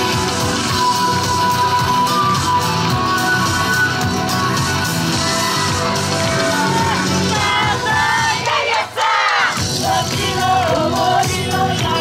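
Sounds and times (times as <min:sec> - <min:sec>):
backing music: 0:00.0 - 0:12.0
crowd shouting a call together: 0:06.6 - 0:09.6.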